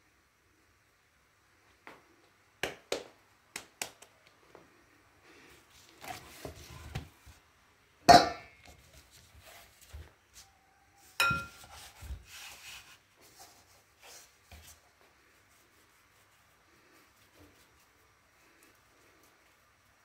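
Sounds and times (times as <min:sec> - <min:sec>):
hands rubbing dough: 0:08.6 - 0:20.0.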